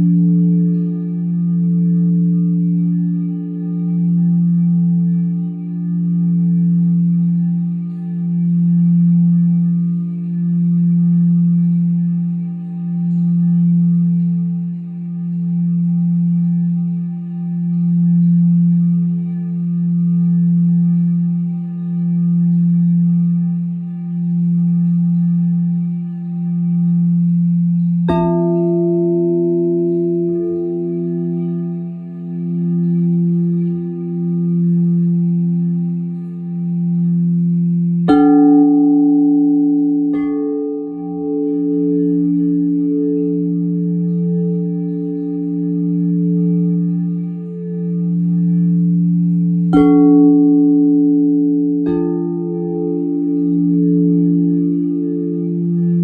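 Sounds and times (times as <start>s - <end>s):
singing bowl struck: 0.0s - 56.0s
singing bowls humming: 0.0s - 56.0s.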